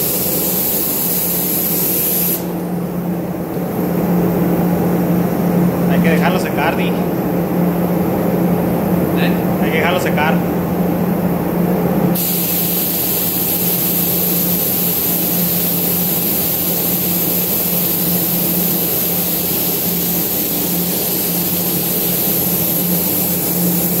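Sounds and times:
high hiss of rushing air: 0:12.2 - 0:24.0.

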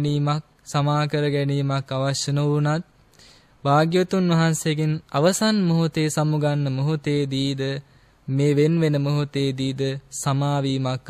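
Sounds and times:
man chanting: 0:00.0 - 0:02.9, 0:03.6 - 0:11.0.

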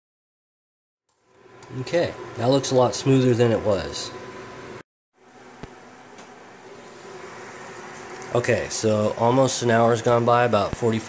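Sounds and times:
sauce boiling with hiss: 0:06.6 - 0:10.8.

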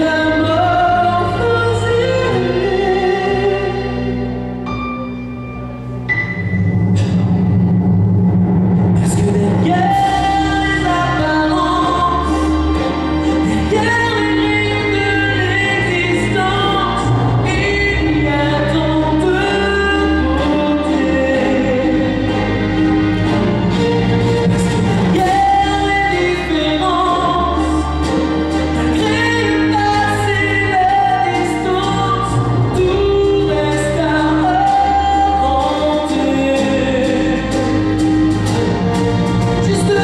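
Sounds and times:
instrumental accompaniment: 0:00.0 - 0:40.0
sustained low bass notes: 0:00.9 - 0:40.0
man singing into microphone: 0:09.0 - 0:22.7, 0:24.6 - 0:28.1, 0:28.8 - 0:37.8, 0:39.6 - 0:40.0.

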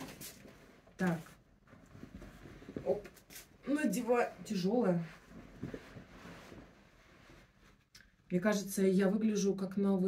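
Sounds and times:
fur coat rustling: 0:00.0 - 0:07.8.

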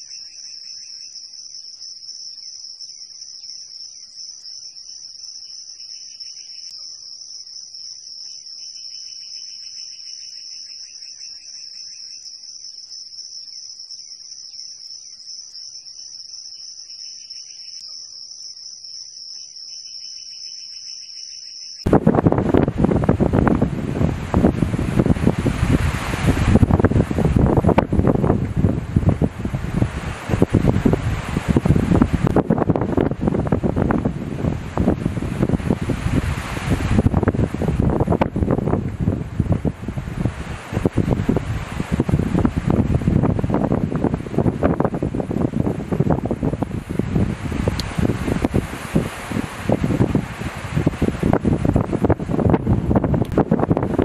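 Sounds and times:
wind buffeting microphone: 0:21.8 - 0:54.0.

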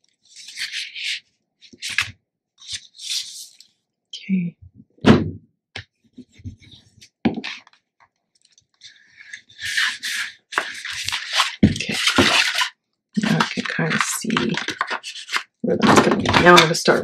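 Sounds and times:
paper rustling and scraping: 0:00.0 - 0:03.7, 0:08.8 - 0:17.0.

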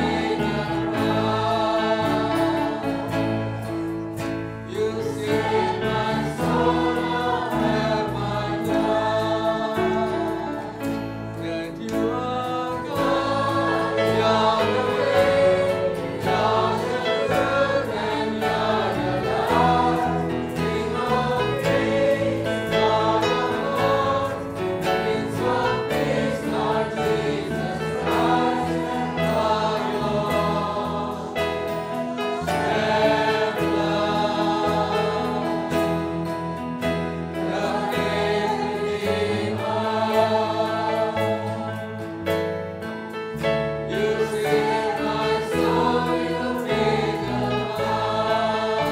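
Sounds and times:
choir singing a worship song: 0:00.0 - 0:48.9.

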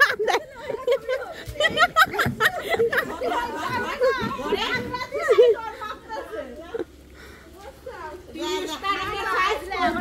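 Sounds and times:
women chattering: 0:00.0 - 0:10.0.

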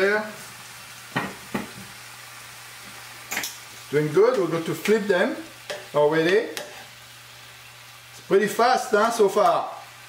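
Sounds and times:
scallops sizzling in a frying pan: 0:00.0 - 0:10.0.

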